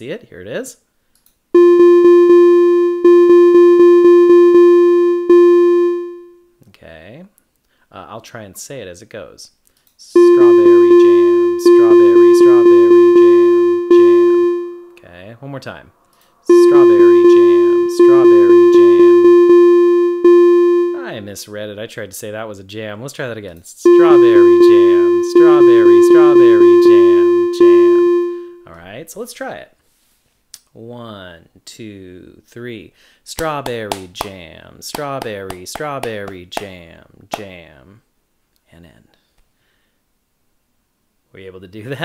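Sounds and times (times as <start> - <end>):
electronic triplet rhythm notes: 1.6 - 6.4, 10.2 - 15.0, 16.5 - 21.1, 23.9 - 28.6.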